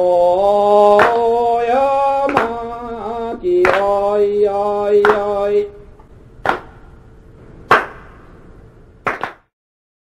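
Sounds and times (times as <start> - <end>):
sharp knocks: 6.4 - 7.0, 7.7 - 8.3.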